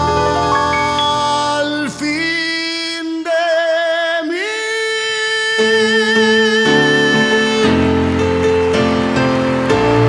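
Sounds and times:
grand piano chords: 0:00.0 - 0:02.6, 0:06.2 - 0:10.0
man singing a long note: 0:00.0 - 0:08.1.

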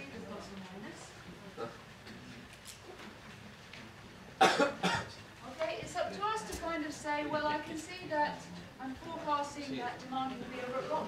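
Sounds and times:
person coughing: 0:04.4 - 0:05.2.

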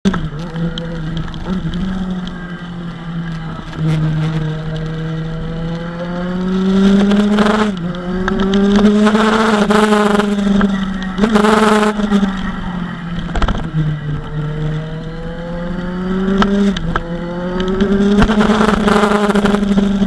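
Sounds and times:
motorcycle engine accelerating: 0:00.0 - 0:20.0.

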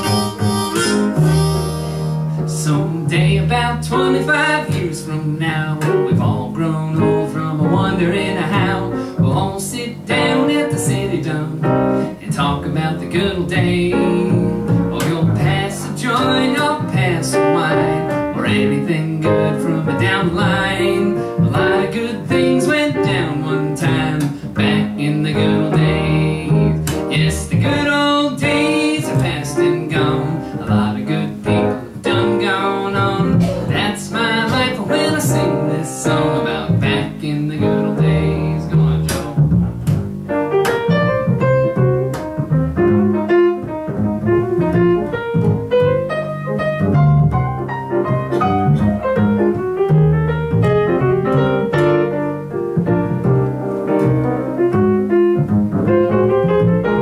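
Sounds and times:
grand piano: 0:00.0 - 0:57.0
plucked upright bass: 0:00.0 - 0:57.0.

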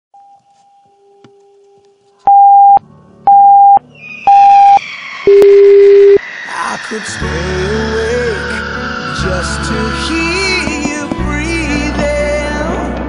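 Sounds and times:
electronic countdown beeps: 0:02.3 - 0:06.2.

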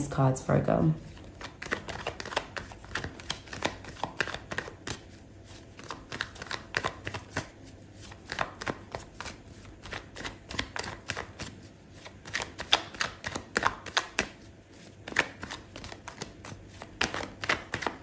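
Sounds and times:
cards being shuffled: 0:01.1 - 0:18.0.

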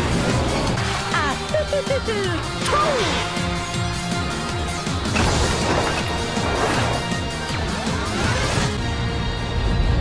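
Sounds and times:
orchestral film score: 0:00.0 - 0:10.0.

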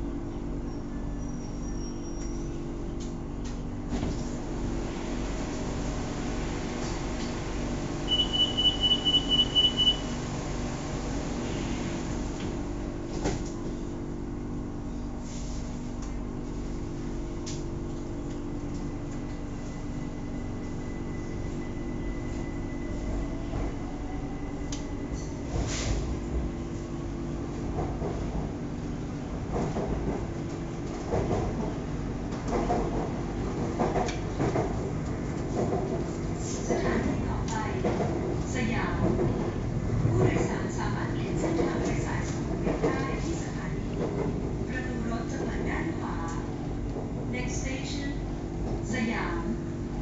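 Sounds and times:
train equipment humming: 0:00.0 - 0:50.0.

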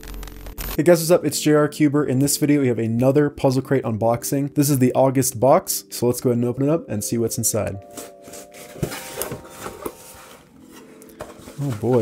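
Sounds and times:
cardboard rubbing and scraping: 0:08.2 - 0:12.0.

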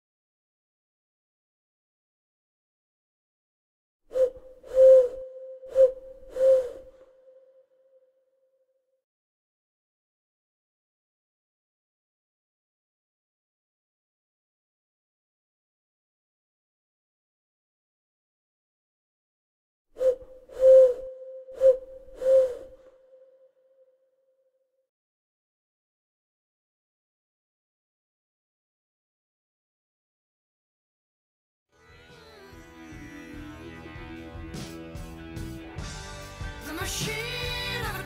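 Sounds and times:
breathy hoot-like notes: 0:04.1 - 0:08.1, 0:20.0 - 0:23.8.

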